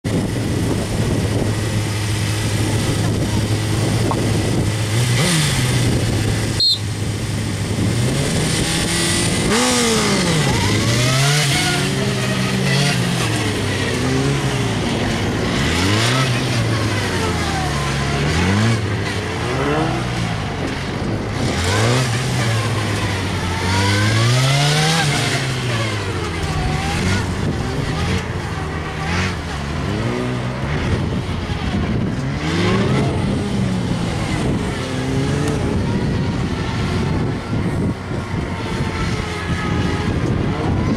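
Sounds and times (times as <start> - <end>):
motorcycle engine revving: 0.0 - 40.9.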